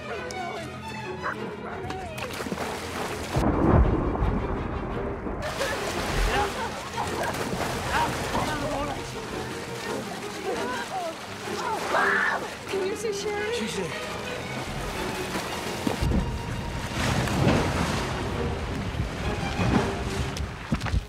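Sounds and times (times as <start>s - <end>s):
tense music: 0.0s - 20.7s
water churning and splashing: 1.6s - 21.0s
deep rumble: 3.3s - 6.7s.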